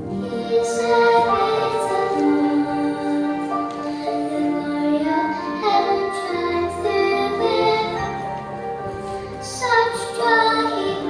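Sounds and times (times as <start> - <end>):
girl singing into microphone: 0.0 - 8.3, 9.3 - 11.0
musical accompaniment: 0.0 - 11.0.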